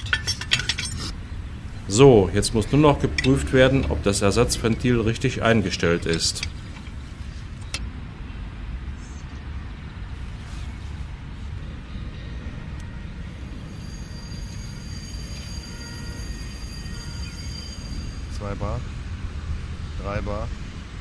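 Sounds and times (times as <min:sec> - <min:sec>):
low outdoor rumble: 0:00.0 - 0:13.8.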